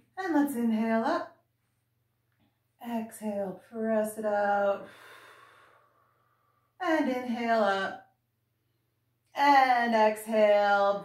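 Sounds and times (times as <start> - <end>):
woman speaking: 0.0 - 1.4, 2.8 - 4.9, 6.8 - 8.0, 9.4 - 11.0.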